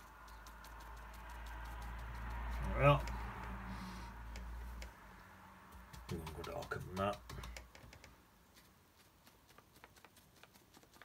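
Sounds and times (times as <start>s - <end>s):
paintbrush tapping on paper: 0.0s - 3.6s, 5.6s - 11.0s.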